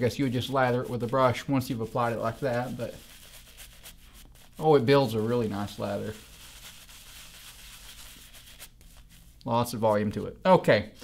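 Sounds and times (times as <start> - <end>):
shaving brush scrubbing lather: 0.0 - 9.4.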